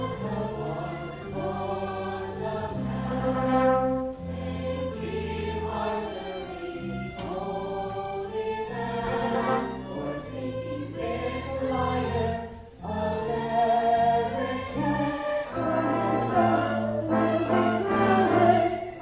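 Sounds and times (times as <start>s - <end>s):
ensemble singing with orchestra: 0.0s - 19.0s.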